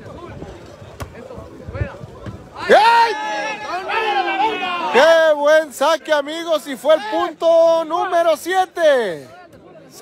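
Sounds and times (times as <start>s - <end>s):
crowd chattering: 0.0s - 10.0s.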